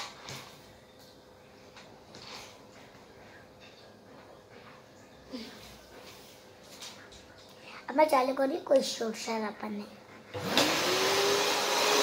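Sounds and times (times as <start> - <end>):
vacuum cleaner motor: 10.3 - 12.0.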